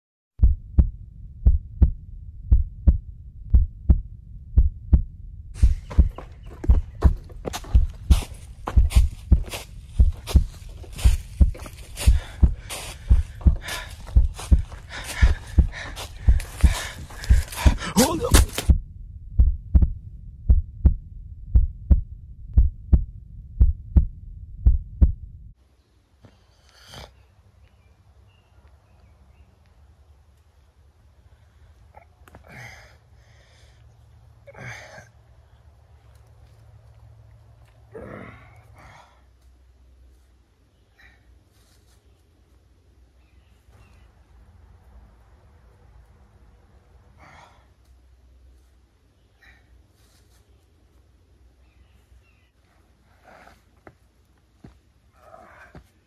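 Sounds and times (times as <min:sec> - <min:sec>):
heartbeat thumps: 0:00.4 - 0:25.6
rustling crunching noise: 0:05.6 - 0:18.7.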